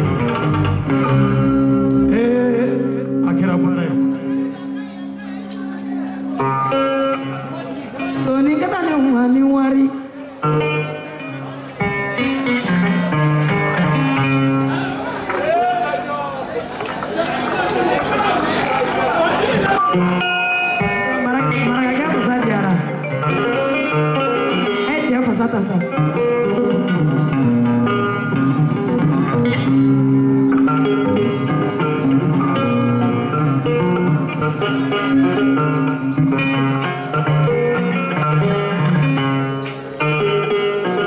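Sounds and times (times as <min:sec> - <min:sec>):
live band with plucked guitar: 0:00.0 - 0:41.0.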